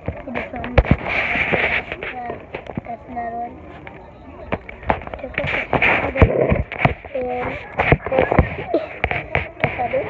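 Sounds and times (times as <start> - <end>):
children's voices: 5.0 - 10.0.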